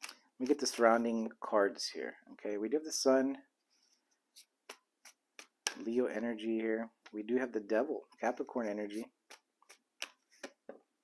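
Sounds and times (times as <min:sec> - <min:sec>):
man speaking: 0:00.4 - 0:03.5, 0:05.7 - 0:09.1.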